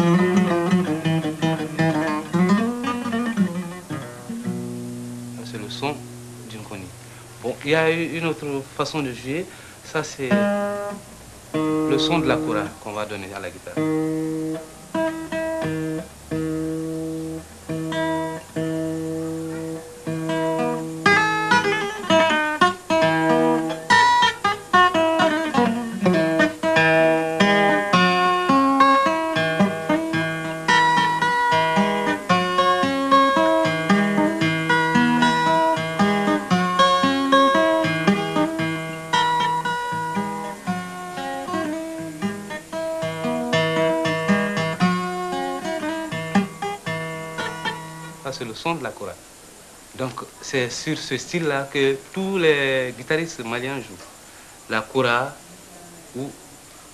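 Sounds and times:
fingerpicked acoustic guitar: 0.0 - 56.9.

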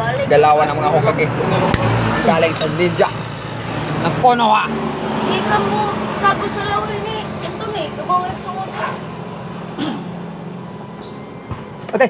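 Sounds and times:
people talking: 4.0 - 9.0.

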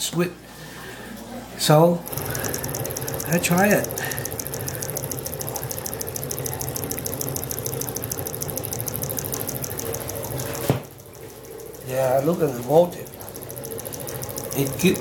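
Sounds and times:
pulse motor pulsing: 2.0 - 15.0.

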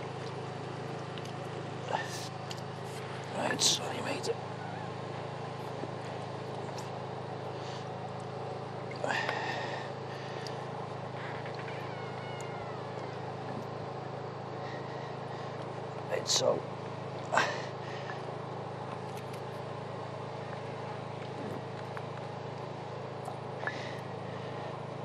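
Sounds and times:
engine running with low drone: 0.0 - 25.0.

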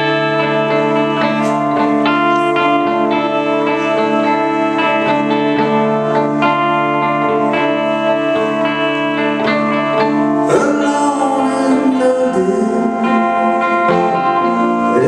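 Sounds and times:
electric guitar playing: 0.0 - 15.0.

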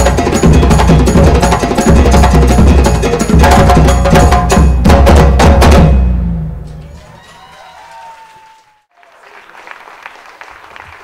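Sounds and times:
low drums ringing: 0.0 - 7.2
percussion ensemble drum hits: 0.0 - 7.2.

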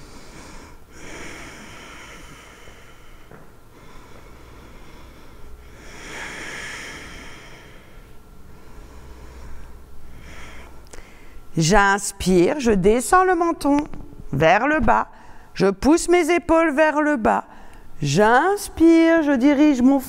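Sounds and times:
woman breathing deeply: 0.0 - 11.5, 15.1 - 15.6, 17.5 - 18.0.

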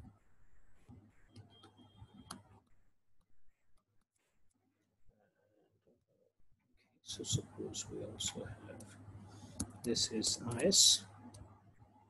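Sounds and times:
stylus tapping tablet screen: 8.8 - 11.5.

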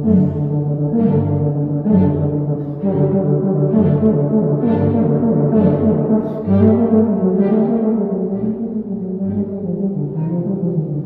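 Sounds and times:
tuba playing low melody: 0.0 - 11.0
violins playing: 0.0 - 11.0.

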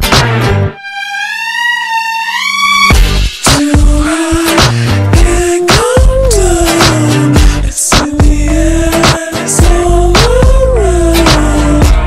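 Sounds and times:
wavering high note sliding upward: 0.7 - 3.0
drums: 2.9 - 12.0.

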